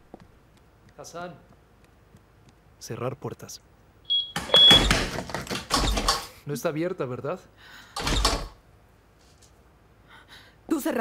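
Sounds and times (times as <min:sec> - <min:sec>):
door lock clunking and rattling: 0:04.4 - 0:06.3, 0:08.0 - 0:08.6.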